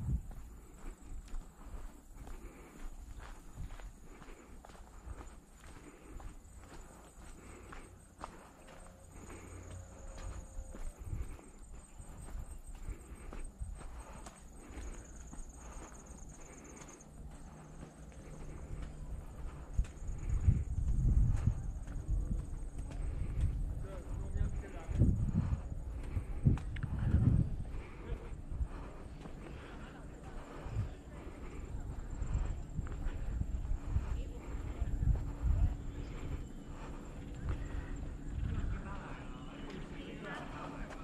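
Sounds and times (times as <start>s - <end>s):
wind rumbling on microphone: 0.0s - 16.8s, 17.5s - 41.0s
footsteps on concrete: 0.0s - 41.0s.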